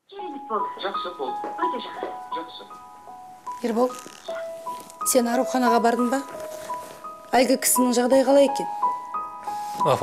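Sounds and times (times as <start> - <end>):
soft chime-like background music: 0.2 - 10.0.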